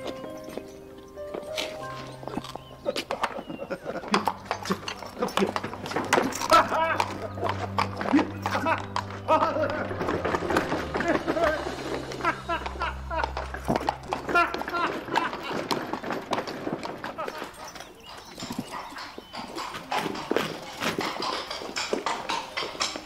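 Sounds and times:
horse hooves on cobblestones: 0.0 - 23.0.

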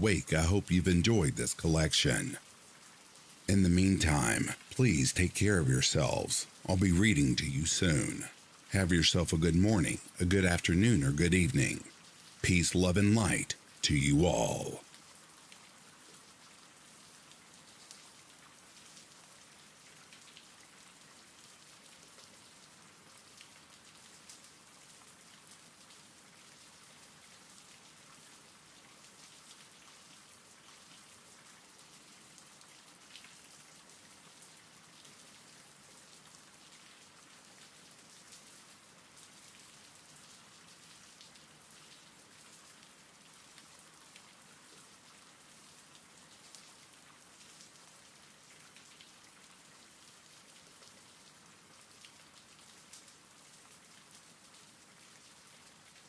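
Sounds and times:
faint steady rain: 0.0 - 56.0.

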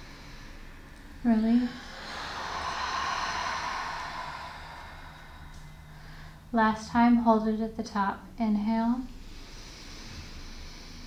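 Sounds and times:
breath exhaled through mouth: 0.0 - 6.5.

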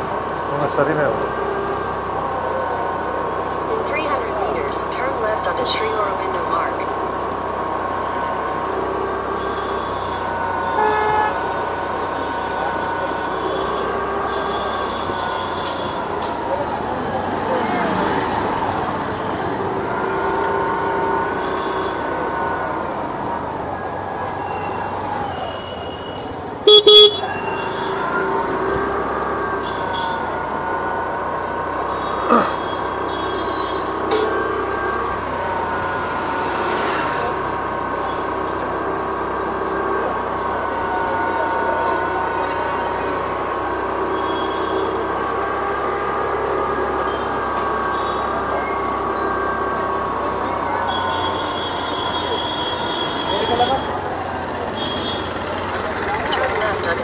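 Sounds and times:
city street traffic: 0.0 - 57.0
vehicle horns honking: 9.1 - 16.3, 19.9 - 22.7, 25.4 - 30.8, 31.8 - 36.6, 41.3 - 49.6, 50.6 - 54.1, 54.7 - 55.7.

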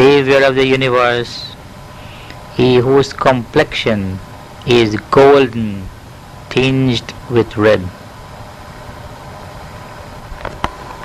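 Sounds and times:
faint even hum: 0.0 - 11.0.

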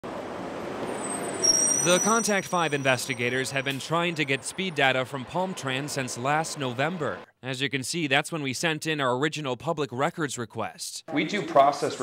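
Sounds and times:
bus passing with road rush: 0.0 - 7.3
high thin squeal: 0.9 - 3.9.

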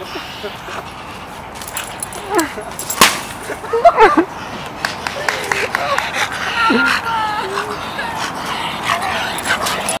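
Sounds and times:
dogs breathing noisily: 0.0 - 10.0.

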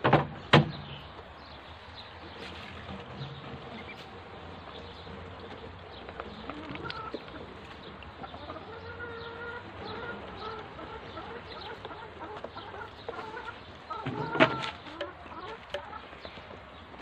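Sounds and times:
ducklings peeping: 0.4 - 17.0.

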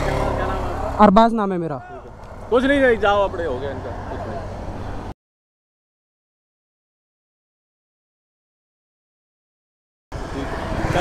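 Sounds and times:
passing cars rumbling: 0.0 - 5.1, 10.1 - 11.0
voices: 0.0 - 5.1.

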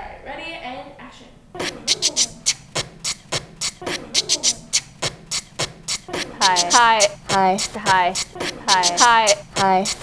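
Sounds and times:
hummed notes: 1.6 - 10.0
woman beatboxing: 1.6 - 10.0.

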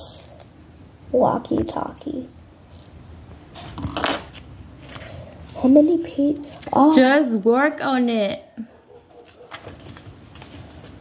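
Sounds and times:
paper pages turning: 3.6 - 5.8, 6.4 - 7.0, 9.1 - 11.0.

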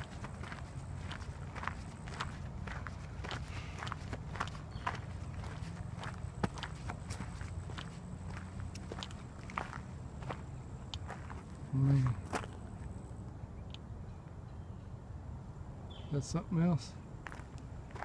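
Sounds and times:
footsteps crunching on gravel: 0.0 - 12.9, 17.2 - 18.0.

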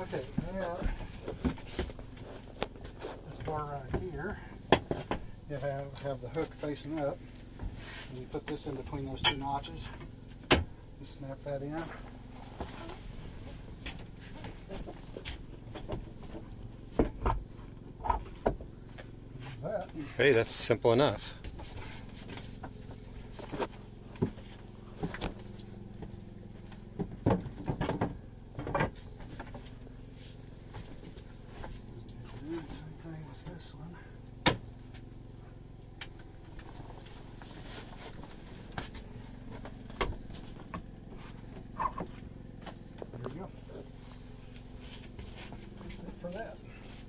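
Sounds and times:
low machine hum: 0.0 - 47.0.

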